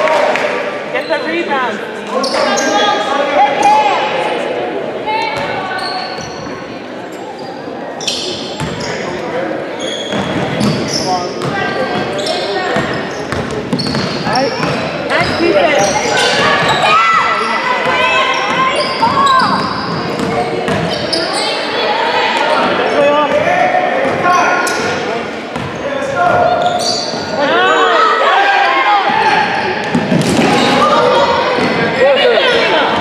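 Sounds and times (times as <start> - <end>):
voices calling out: 0.9 - 33.0.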